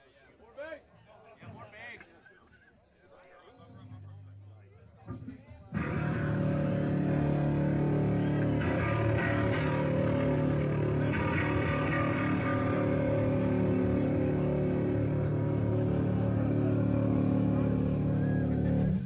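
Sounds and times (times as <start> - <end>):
heavy rock band playing: 5.8 - 19.0.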